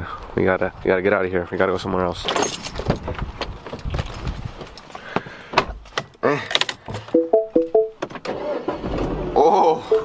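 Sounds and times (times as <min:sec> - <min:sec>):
car engine cranking and starting: 0:08.0 - 0:09.6.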